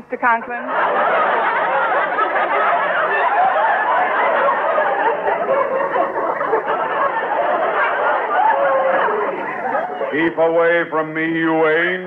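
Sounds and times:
studio audience laughing: 0.6 - 12.0.

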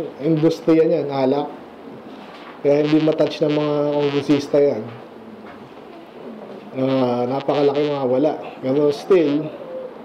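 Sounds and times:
room noise: 0.0 - 10.0
faint bird cooing: 5.0 - 10.0.

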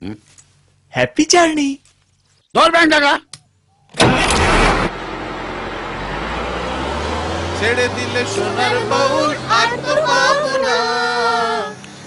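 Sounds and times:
bus engine starting and running: 3.9 - 12.0.

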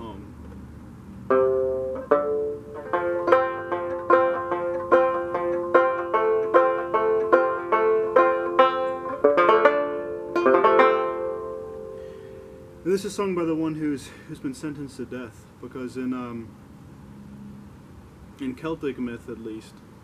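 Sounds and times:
banjo picking ringing notes: 1.3 - 13.6.

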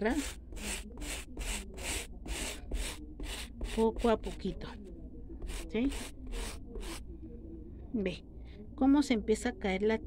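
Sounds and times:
brush scrubbing rubber sole: 0.0 - 4.5, 5.4 - 7.0.

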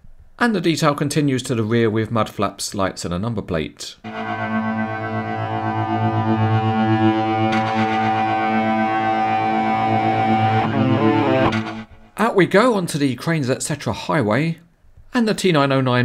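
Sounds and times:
instrumental music: 4.0 - 12.2.

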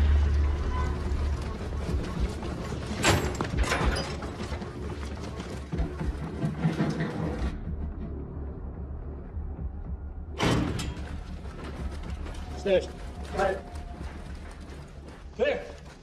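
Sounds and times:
steady low rumble: 7.3 - 15.4.

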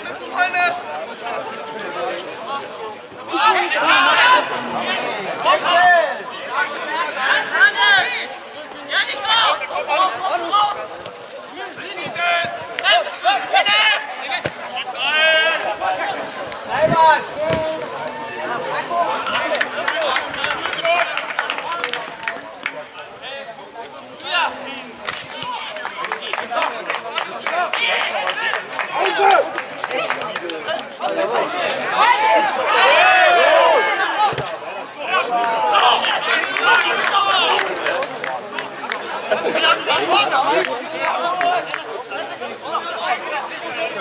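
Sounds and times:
players shouting: 0.0 - 44.0
voices calling out and chatting: 0.0 - 44.0.

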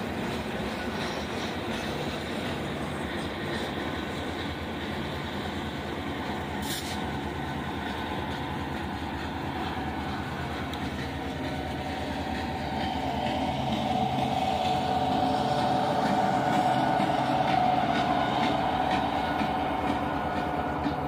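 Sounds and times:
diesel locomotive: 0.0 - 21.0
train wheels clicking on rail joints: 0.0 - 21.0.

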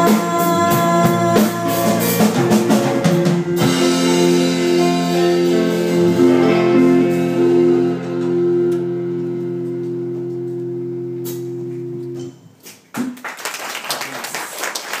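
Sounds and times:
rock band final chord: 2.2 - 12.2
audience clapping: 12.8 - 15.0.

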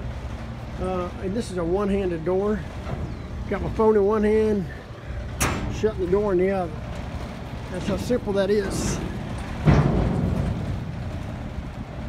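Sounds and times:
low rumble: 2.6 - 12.0
heavy knock: 9.4 - 11.2.

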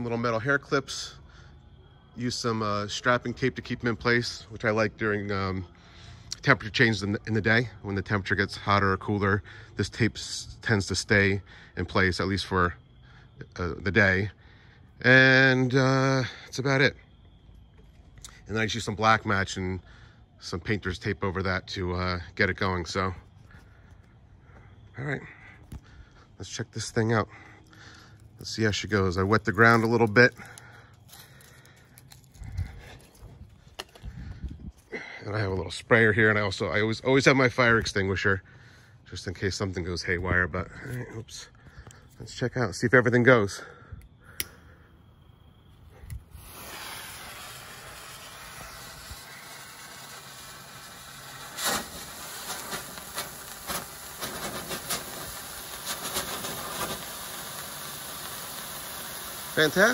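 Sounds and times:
fireworks popping and sputtering: 27.8 - 34.9, 46.1 - 59.9
fuse hissing: 45.8 - 59.9.

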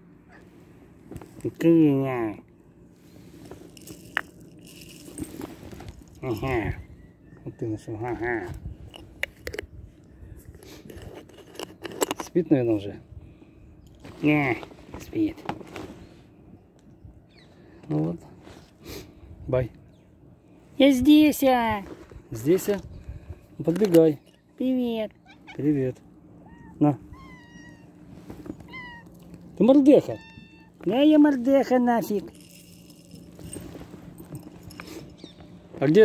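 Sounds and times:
cat crunching dry kibble: 3.6 - 6.2, 8.9 - 9.7, 10.4 - 12.3, 32.3 - 35.1
cat meowing: 26.4 - 28.0, 28.6 - 29.2, 30.1 - 30.8.

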